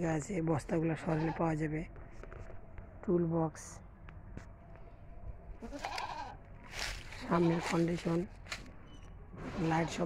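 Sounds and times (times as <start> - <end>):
goat bleating: 1.0 - 1.6, 5.6 - 6.4, 7.2 - 8.0
brief rustle: 6.7 - 8.7.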